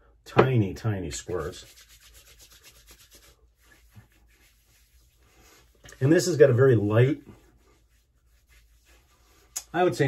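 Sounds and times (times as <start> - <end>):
wet palms rubbing together: 1.3 - 10.0
hands moving on skin: 1.4 - 6.2.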